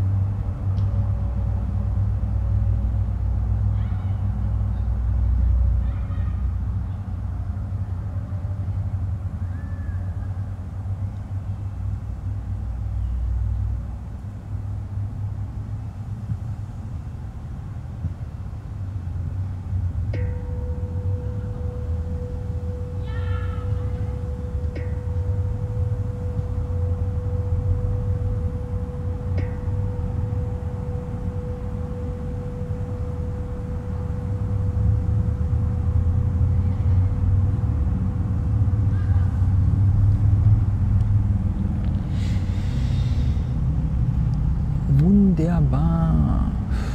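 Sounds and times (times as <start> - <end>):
distant road traffic rumble: 0.0 - 46.9
faint steady tone: 0.0 - 46.9
brief pitched call: 23.0 - 24.2.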